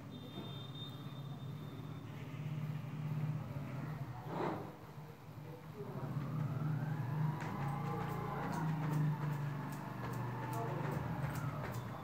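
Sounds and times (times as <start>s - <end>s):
low motor drone: 6.0s - 12.0s.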